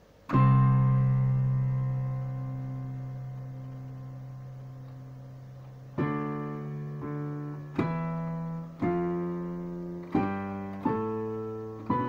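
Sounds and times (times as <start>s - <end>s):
digital piano chord: 0.0s - 12.0s.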